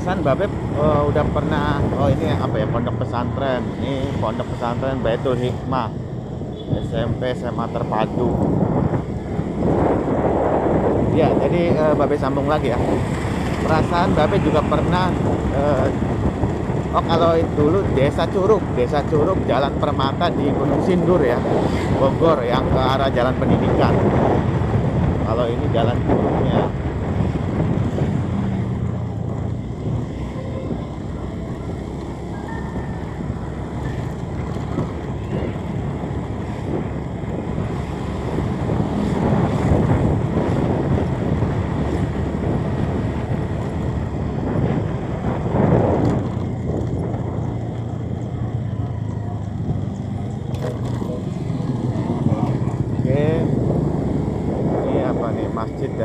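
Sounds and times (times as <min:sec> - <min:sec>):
engine rumble: 0:00.0 - 0:56.0
wind rushing over microphone: 0:00.0 - 0:56.0.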